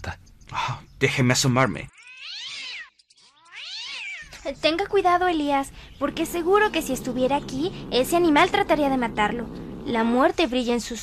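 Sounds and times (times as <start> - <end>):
cat meowing angrily: 1.9 - 4.3.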